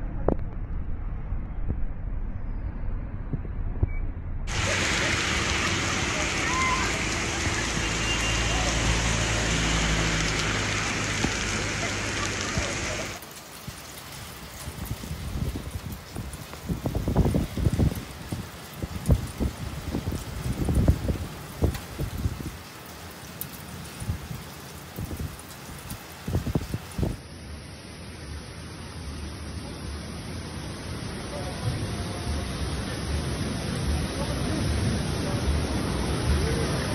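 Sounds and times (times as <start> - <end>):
heavy rain pouring on street: 4.5 - 36.9
wind gusts on microphone: 14.4 - 22.7, 23.8 - 27.2.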